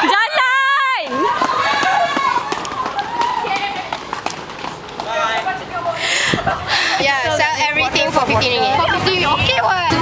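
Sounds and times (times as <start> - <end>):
footsteps on paved path: 0.0 - 10.0
group of voices talking: 0.0 - 10.0.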